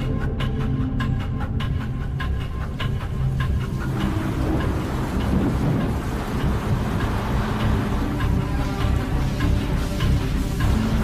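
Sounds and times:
low rumbling drone: 0.0 - 11.0
rush of noise: 3.5 - 11.0.

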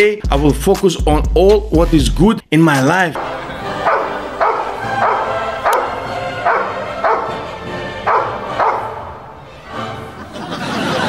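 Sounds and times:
music: 0.0 - 11.0
large dog barking: 3.2 - 9.4.

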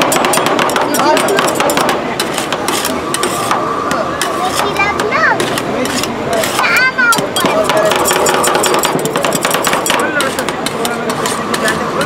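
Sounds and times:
metal spatulas clacking on cold plate: 0.0 - 3.6, 4.2 - 12.0.

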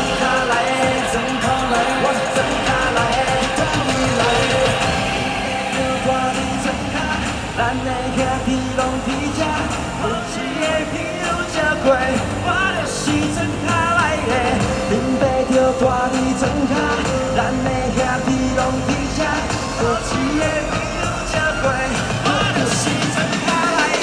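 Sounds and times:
live pop-rock music with singing: 0.0 - 24.0.

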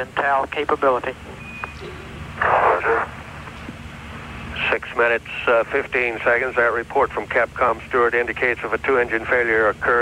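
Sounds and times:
radio static hiss: 0.0 - 1.2, 1.8 - 10.0
low steady hum: 0.0 - 10.0.

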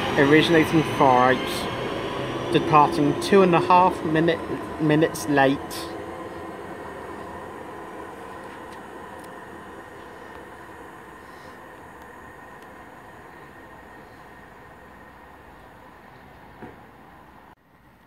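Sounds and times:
electric train hum: 0.0 - 18.0.

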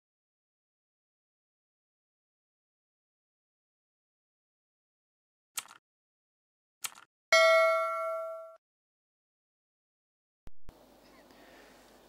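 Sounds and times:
bell-like ding: 7.3 - 8.6.

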